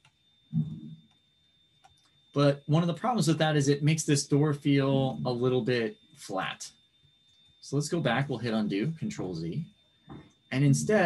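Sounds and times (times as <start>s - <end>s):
faint high-pitched whine: 0.0s - 11.0s
low murmur: 0.6s - 1.0s, 2.4s - 6.7s, 7.6s - 9.7s, 10.5s - 11.0s.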